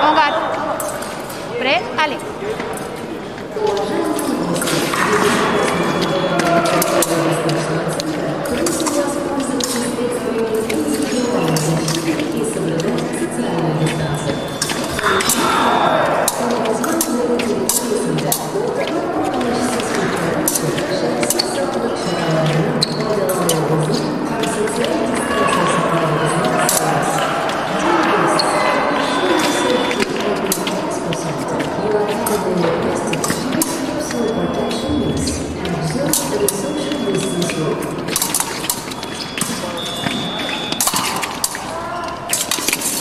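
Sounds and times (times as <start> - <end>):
voices echoing: 0.0 - 43.0
fencers' feet tapping: 2.6 - 43.0
fencing blades clicking: 36.0 - 43.0.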